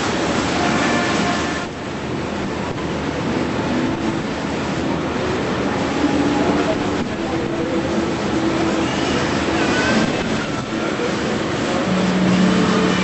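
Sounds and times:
boat engine rumble: 0:00.0 - 0:13.0
water rushing past hull: 0:00.0 - 0:13.0.

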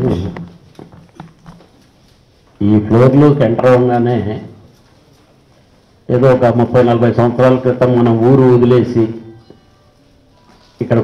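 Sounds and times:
man's voice: 0:00.0 - 0:00.5, 0:02.6 - 0:04.6, 0:06.1 - 0:09.4, 0:10.8 - 0:11.0
handheld microphone being handled: 0:00.2 - 0:02.6.

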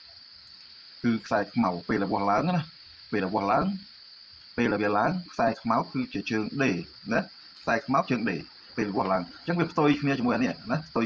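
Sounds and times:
crickets chirring: 0:00.0 - 0:11.0
man talking: 0:01.0 - 0:03.9, 0:04.6 - 0:11.0.

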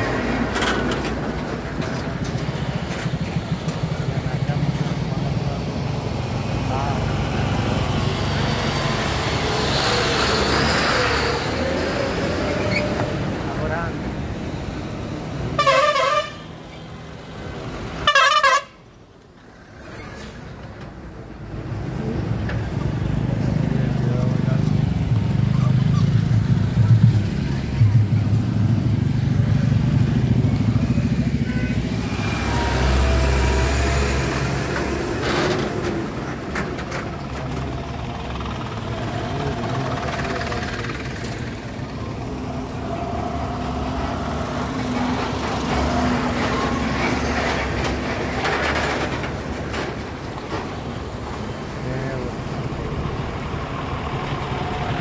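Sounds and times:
engine and road noise: 0:00.0 - 0:55.0
vehicle horn honks: 0:15.6 - 0:16.4, 0:18.0 - 0:18.8, 0:31.4 - 0:31.9.

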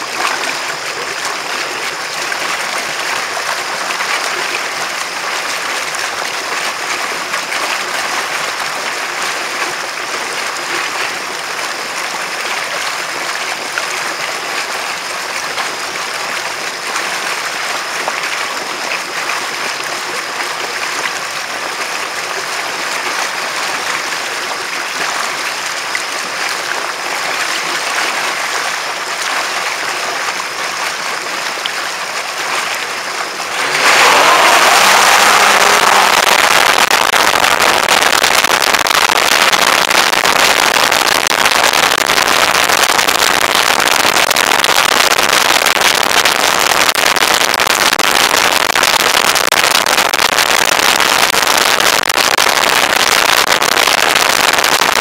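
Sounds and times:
water rushing in jet wake: 0:00.0 - 0:55.0
low engine drone: 0:33.0 - 0:38.9.

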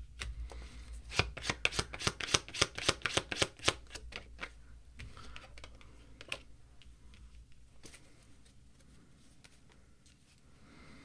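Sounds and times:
cards shuffling with clicks: 0:01.1 - 0:04.6.

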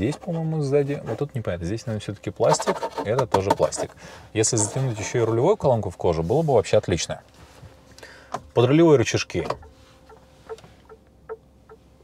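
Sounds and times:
turn signal indicator ticking: 0:09.3 - 0:12.0.

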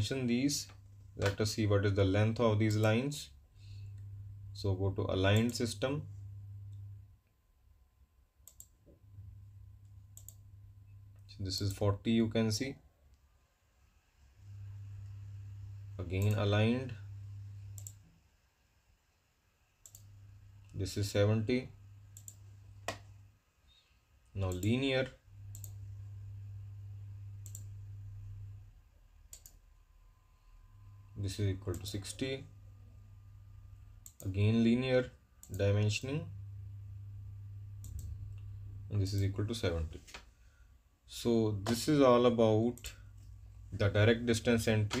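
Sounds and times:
faint low hum: 0:00.0 - 0:45.0
computer mouse clicks: 0:08.4 - 0:08.8, 0:10.2 - 0:10.4, 0:16.1 - 0:16.4, 0:17.8 - 0:18.1, 0:19.8 - 0:20.8, 0:22.2 - 0:23.1, 0:24.5 - 0:24.8, 0:25.5 - 0:25.8, 0:27.4 - 0:27.8, 0:29.3 - 0:29.6, 0:34.0 - 0:34.3, 0:37.8 - 0:38.2.

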